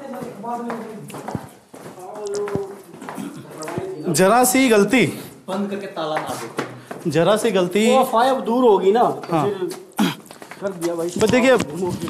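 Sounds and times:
footsteps on stone steps: 0:00.0 - 0:04.2, 0:06.0 - 0:07.2, 0:09.3 - 0:12.0.

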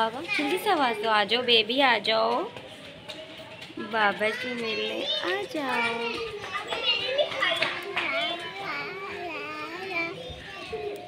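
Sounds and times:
children chattering and calling: 0:00.0 - 0:11.0.

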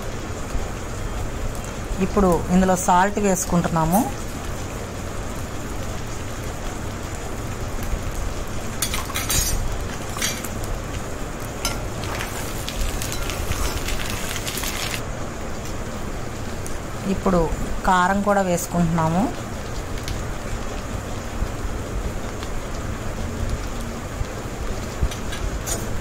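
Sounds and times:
duck sizzling in hot oil: 0:03.6 - 0:16.8, 0:19.1 - 0:26.0
utensil clinking against pan: 0:08.8 - 0:10.5.

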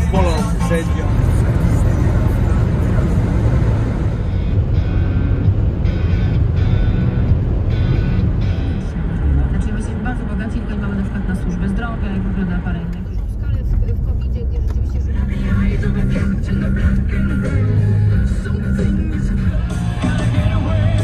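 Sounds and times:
background music: 0:00.0 - 0:10.3, 0:15.1 - 0:21.0
road and engine noise in car: 0:00.0 - 0:21.0.

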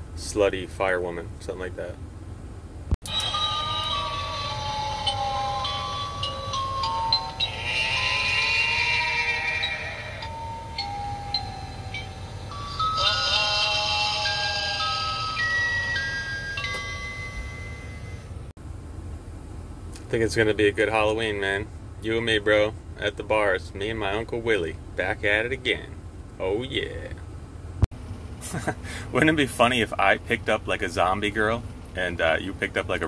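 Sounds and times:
spooky electronic bell-like tune: 0:03.0 - 0:18.5.

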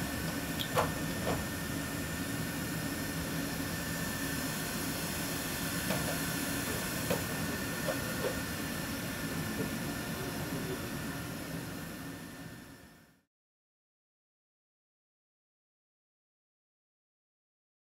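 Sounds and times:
robot mechanical hum and hiss: 0:00.0 - 0:13.0.

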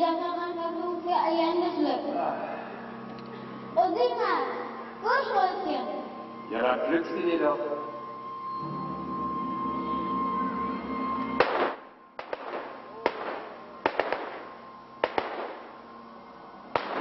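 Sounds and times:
held musical note humming: 0:01.7 - 0:16.8
gunshots with echo: 0:11.4 - 0:15.8, 0:16.8 - 0:17.0.

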